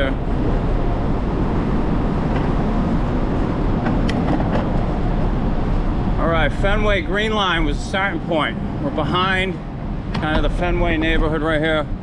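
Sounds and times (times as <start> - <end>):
wind noise: 0.0 - 12.0.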